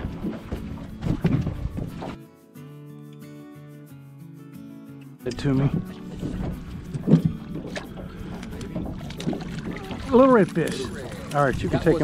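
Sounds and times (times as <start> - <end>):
small waves lapping against boat: 0.0 - 2.2, 5.4 - 12.0.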